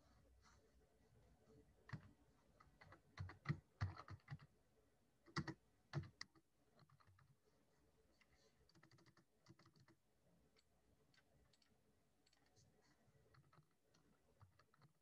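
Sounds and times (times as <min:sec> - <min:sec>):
typing on computer keyboard: 0:01.9 - 0:04.5, 0:05.2 - 0:07.4, 0:08.2 - 0:10.0, 0:10.6 - 0:12.6, 0:13.3 - 0:15.0.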